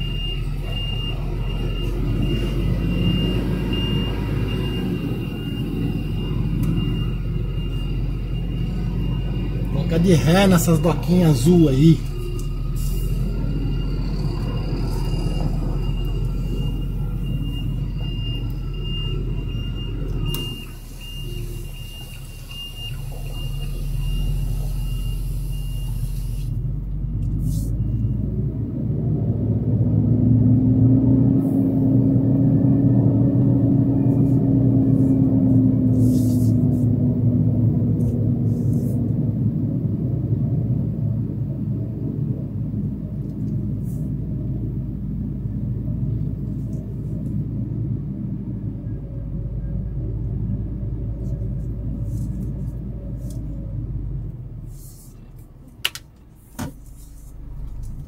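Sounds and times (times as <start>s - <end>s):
truck diesel engine: 0.0s - 58.0s.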